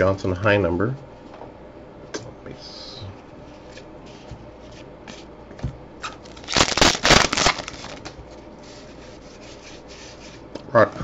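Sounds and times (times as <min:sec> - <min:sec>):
cards sliding and rubbing: 0:06.2 - 0:10.5.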